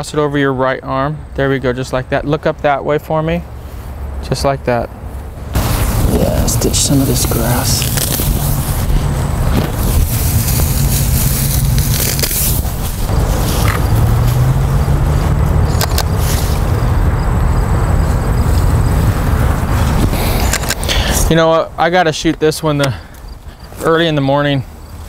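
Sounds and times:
wind buffeting microphone: 0:04.9 - 0:23.8
tall grass rustling: 0:05.0 - 0:21.6.

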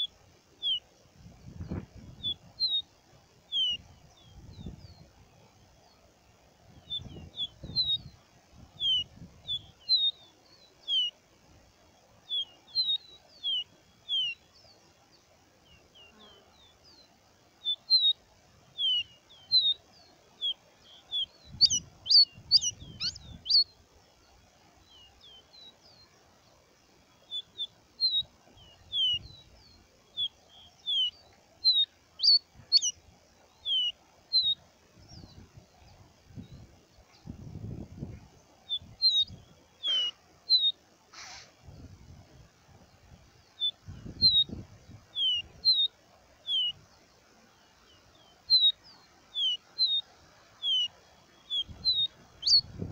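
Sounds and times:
bird singing whistled notes: 0:00.0 - 0:02.9, 0:03.5 - 0:05.2, 0:06.7 - 0:11.2, 0:12.2 - 0:23.8, 0:24.8 - 0:40.8, 0:42.9 - 0:47.0, 0:47.7 - 0:52.9.

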